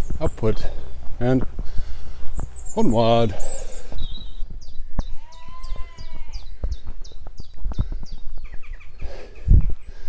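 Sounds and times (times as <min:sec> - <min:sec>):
songbird singing: 0:00.0 - 0:10.0
rising and falling bird call: 0:02.3 - 0:10.0.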